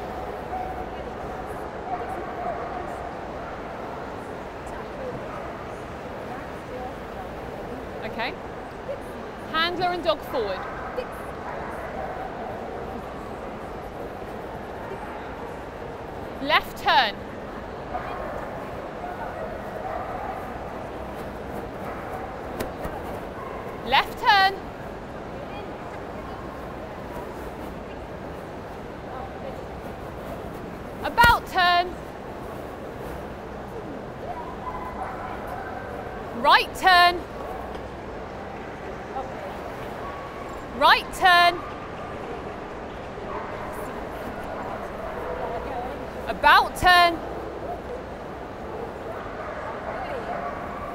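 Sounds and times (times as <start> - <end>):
faint distant voices: 0.0 - 50.9
indoor arena hubbub: 0.0 - 50.9
dogs: 10.6 - 13.4, 17.9 - 20.8, 21.7 - 23.8, 34.2 - 36.3, 39.9 - 40.7, 43.2 - 46.0, 47.4 - 50.9.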